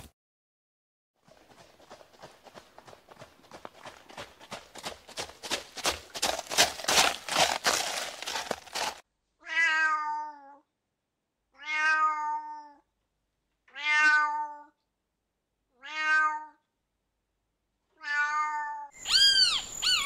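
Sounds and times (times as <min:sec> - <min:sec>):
cat meowing: 0:09.4 - 0:10.6, 0:11.6 - 0:12.8, 0:13.7 - 0:14.8, 0:15.7 - 0:16.6, 0:18.0 - 0:20.0.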